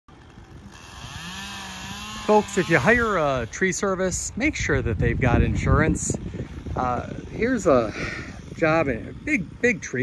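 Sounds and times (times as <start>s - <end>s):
motor running: 0.1s - 10.0s.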